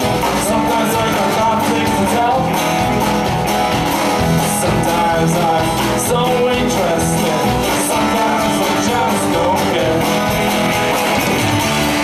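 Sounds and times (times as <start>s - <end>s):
acoustic guitar: 0.0s - 12.0s
bass guitar: 0.0s - 12.0s
drums and cymbals: 0.0s - 12.0s
electric guitar: 0.0s - 12.0s.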